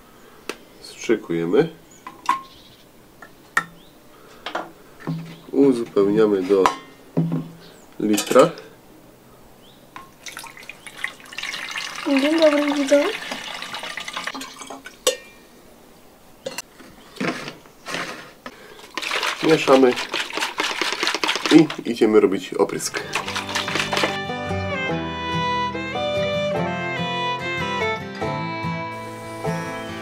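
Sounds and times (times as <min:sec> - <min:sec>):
water pouring into plastic bottle: 0:10.2 - 0:15.0, 0:18.7 - 0:22.0, 0:22.8 - 0:24.2
enamel jug clinking down: 0:18.8 - 0:21.8, 0:22.9 - 0:24.2
syringe squirting liquid: 0:18.8 - 0:21.9, 0:22.9 - 0:24.2.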